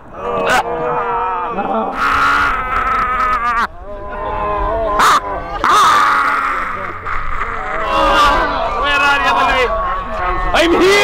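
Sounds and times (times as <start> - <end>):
men yelling and wailing: 0.0 - 11.0.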